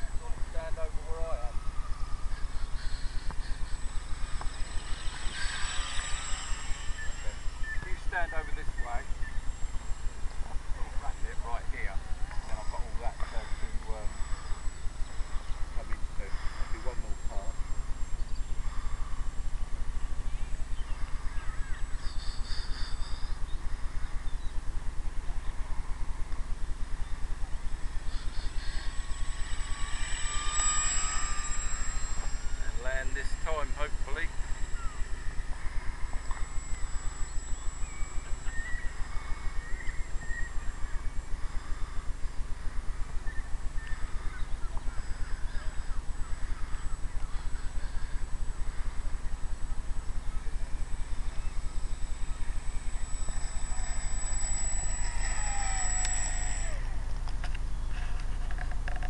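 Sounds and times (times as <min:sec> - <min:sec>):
low pulsing rumble: 0:00.0 - 0:59.0
model aircraft buzzing overhead: 0:00.0 - 0:59.0
steady low hum: 0:00.0 - 0:59.0.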